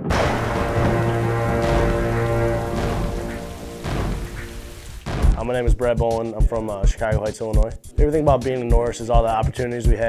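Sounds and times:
held music chord: 0.0s - 5.0s
noisy hit: 0.0s - 5.6s
crackling thunder effect: 0.0s - 5.7s.

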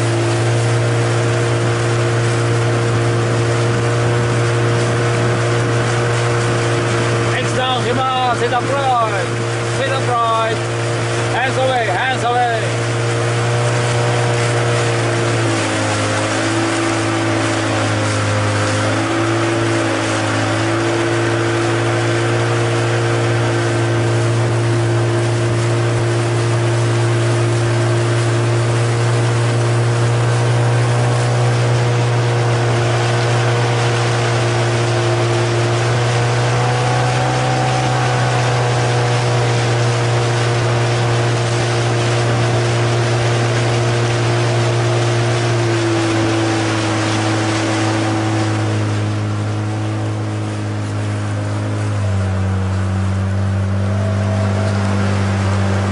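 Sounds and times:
motorboat engine running: 0.0s - 55.9s.

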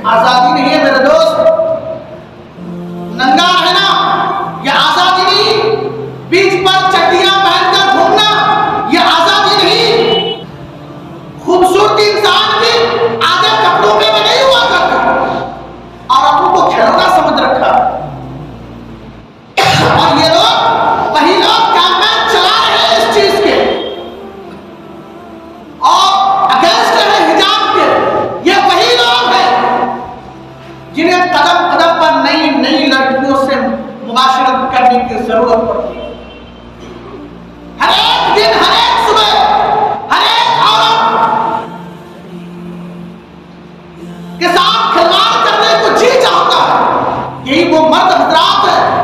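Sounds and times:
man speaking into a microphone: 0.0s - 2.0s, 3.1s - 10.5s, 11.4s - 18.2s, 19.6s - 23.9s, 25.8s - 30.2s, 30.9s - 36.1s, 37.8s - 41.6s, 44.3s - 49.0s
steady low hum: 0.0s - 49.0s.

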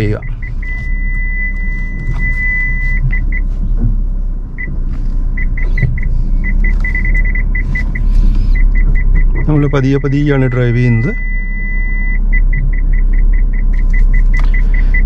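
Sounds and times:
parking sensor beeping: 0.0s - 3.8s, 4.5s - 15.0s
low engine rumble: 0.0s - 15.0s.

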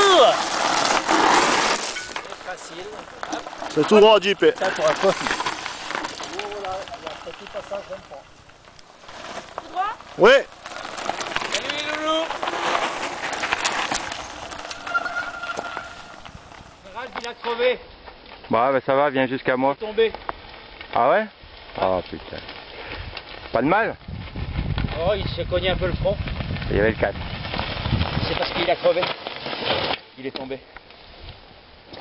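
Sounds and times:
bike tyres crunching gravel: 0.0s - 32.0s.

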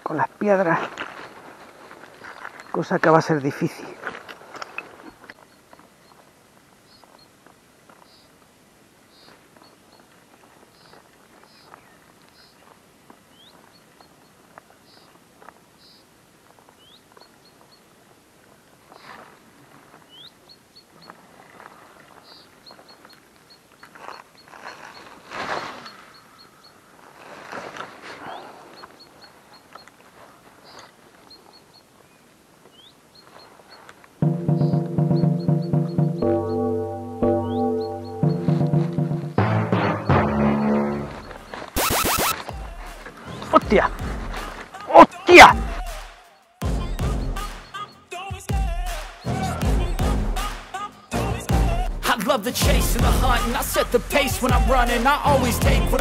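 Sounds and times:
footsteps crunching over stones: 0.0s - 8.5s, 9.1s - 20.4s, 21.0s - 31.6s, 41.0s - 41.8s, 42.4s - 45.2s
bird chirping: 4.6s - 7.4s, 8.0s - 8.4s, 9.0s - 16.1s, 16.7s - 18.0s, 20.0s - 21.2s, 28.2s - 44.6s, 46.3s - 48.2s
loud music: 34.2s - 44.6s, 45.3s - 56.0s.

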